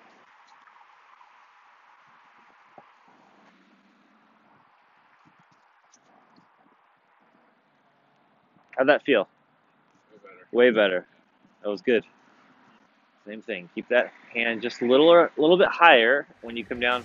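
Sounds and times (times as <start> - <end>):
faint outdoor hiss: 0.0 - 17.0.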